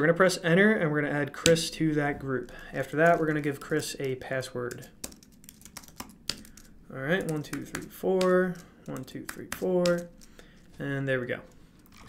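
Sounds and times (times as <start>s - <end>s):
keyboard typing: 4.7s - 10.4s.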